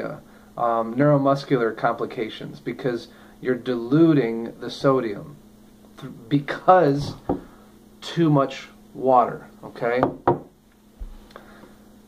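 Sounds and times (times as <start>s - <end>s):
glass pitcher knocking on wood: 7.0s - 7.5s, 10.0s - 10.5s.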